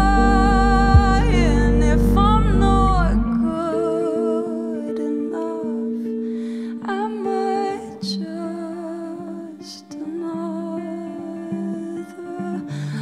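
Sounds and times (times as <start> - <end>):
bass guitar: 0.0 - 3.6
held chords: 0.0 - 9.4
soft wordless vocal: 0.0 - 13.0.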